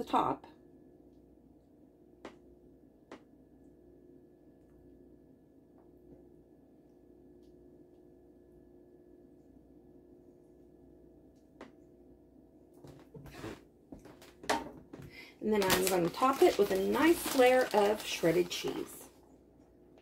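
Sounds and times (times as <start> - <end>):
faint steady hum: 0.0 - 20.0.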